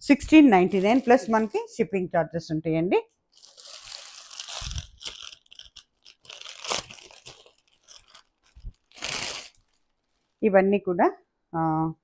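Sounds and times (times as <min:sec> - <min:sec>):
plastic packaging crinkling: 0:00.6 - 0:01.7, 0:03.3 - 0:10.4.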